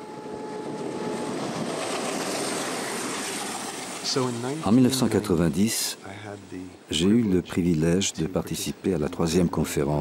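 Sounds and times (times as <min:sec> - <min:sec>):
passenger train rumbling past: 0:00.0 - 0:07.0.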